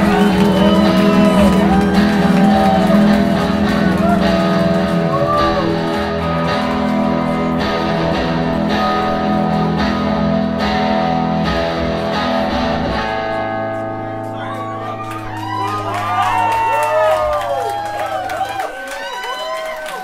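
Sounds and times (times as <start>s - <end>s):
rock band playing: 0.0s - 18.6s
ringing electric guitar chords: 0.0s - 19.6s.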